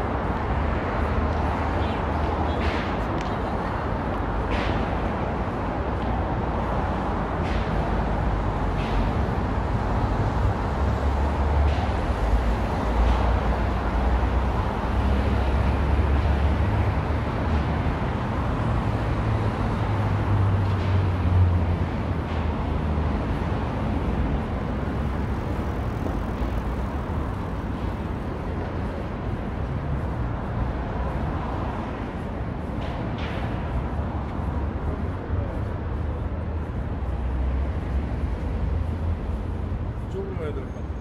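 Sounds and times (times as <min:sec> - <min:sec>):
road traffic rumble: 0:00.0 - 0:41.0.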